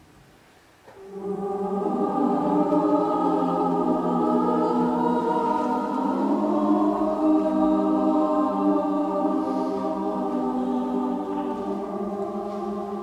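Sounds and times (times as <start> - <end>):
mixed choir singing: 0.9 - 13.0.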